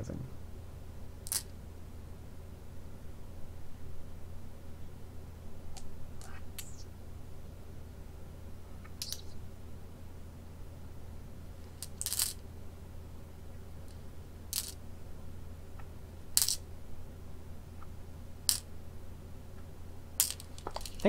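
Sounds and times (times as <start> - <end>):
low steady hum: 0.0 - 21.0
stones clicking on wooden board: 20.2 - 21.0.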